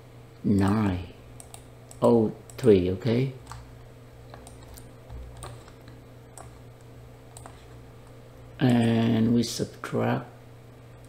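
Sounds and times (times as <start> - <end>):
low steady hum: 0.0 - 11.0
computer input clicks: 0.6 - 2.8, 7.3 - 7.7.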